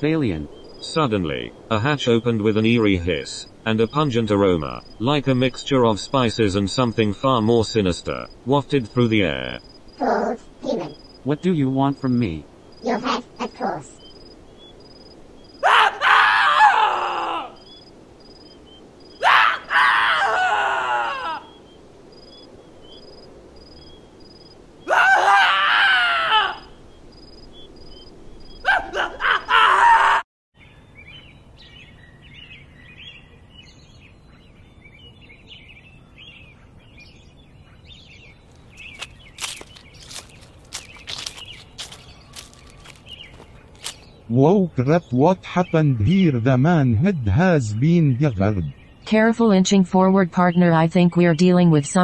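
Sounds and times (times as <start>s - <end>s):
bird chirps: 0.0s - 15.6s, 17.5s - 19.2s, 26.6s - 29.5s, 30.6s - 52.0s
crickets chirping: 0.0s - 36.0s, 37.1s - 44.3s
person screaming: 15.6s - 17.6s, 19.2s - 21.4s, 24.9s - 26.7s, 28.7s - 30.2s.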